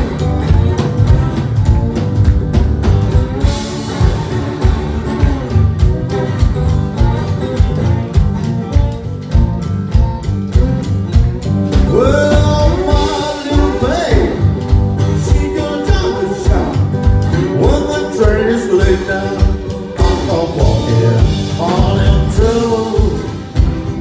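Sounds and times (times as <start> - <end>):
acoustic guitar strumming: 0.0 - 24.0
rhythmic low beat: 0.0 - 24.0
man singing: 11.7 - 24.0.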